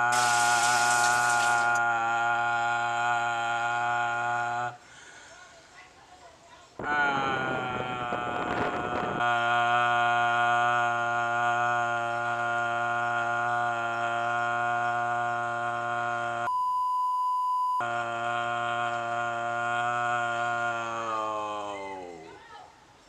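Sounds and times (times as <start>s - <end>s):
man holding long sung note: 0.0s - 4.8s, 6.8s - 16.5s, 17.8s - 22.3s
high censor bleep: 16.5s - 17.8s.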